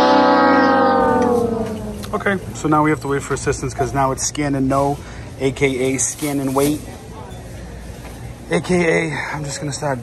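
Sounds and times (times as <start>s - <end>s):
falling brass-like comic note: 0.0s - 2.4s.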